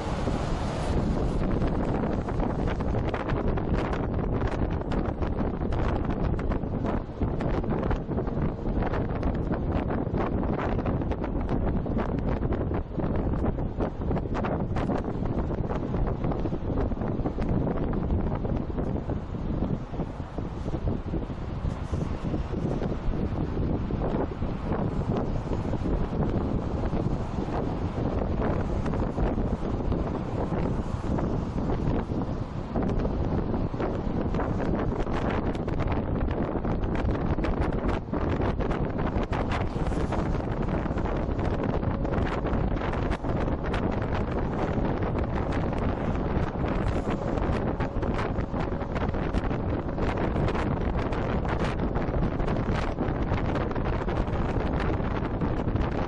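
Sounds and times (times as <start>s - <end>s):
car rumbling at speed: 0.0s - 56.0s
wind buffeting microphone: 0.0s - 56.0s.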